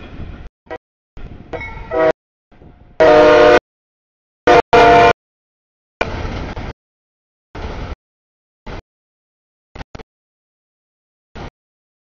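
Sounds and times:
freight train rolling: 0:00.0 - 0:03.6, 0:06.0 - 0:06.8, 0:07.6 - 0:08.0
multi-tone train air horn: 0:01.8 - 0:02.2, 0:03.0 - 0:03.6, 0:04.5 - 0:05.2.

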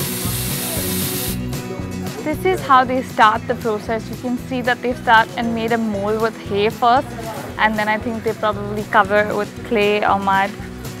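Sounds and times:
spray gun hissing: 0:00.0 - 0:01.5
music with low beat: 0:00.0 - 0:11.0.

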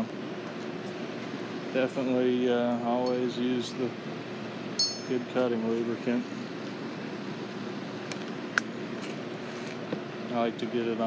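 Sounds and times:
steady shop hum: 0:00.0 - 0:11.0
metallic clink of tooling: 0:04.8 - 0:05.3.

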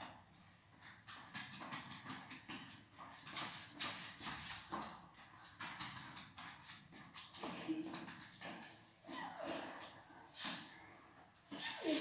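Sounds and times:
dog claws clicking on marble floor: 0:00.8 - 0:08.8.

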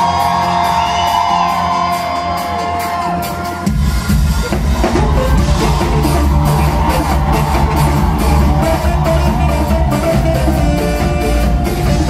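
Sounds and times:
drums: 0:00.0 - 0:12.0
electric bass: 0:04.5 - 0:12.0.

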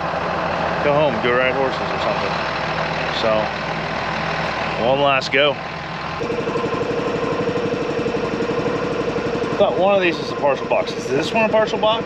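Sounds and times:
engine running: 0:00.0 - 0:12.0
steady whine: 0:00.0 - 0:12.0.

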